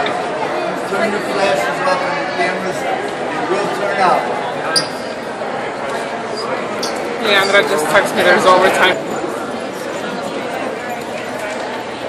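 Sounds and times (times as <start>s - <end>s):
murmur of people: 0.0s - 12.0s.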